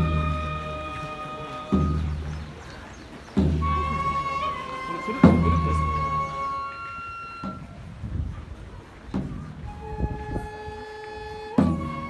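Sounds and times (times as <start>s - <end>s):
soft low drum strokes: 0.0s - 12.0s.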